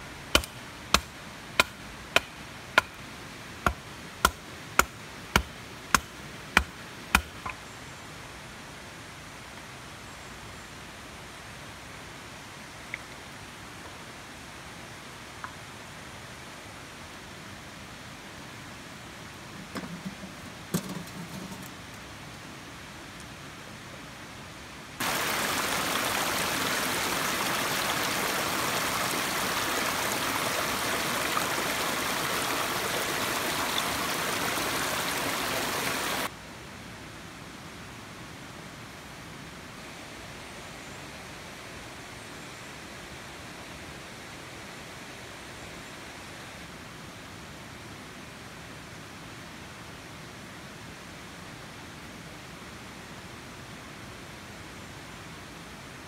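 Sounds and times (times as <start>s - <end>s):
stream rushing over rocks: 24.7s - 36.4s
river rushing: 25.0s - 36.4s.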